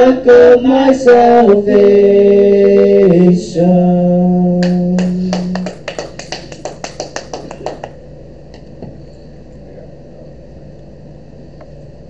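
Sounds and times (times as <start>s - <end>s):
quick hand clapping: 4.6s - 8.0s.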